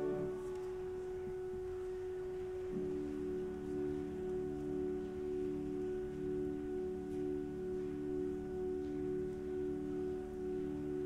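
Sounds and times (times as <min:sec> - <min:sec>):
pipe organ sustained chord: 0:00.0 - 0:11.0.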